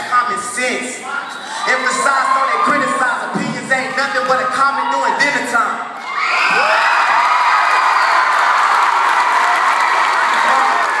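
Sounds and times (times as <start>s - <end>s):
crowd cheering and screaming: 0.0s - 11.0s.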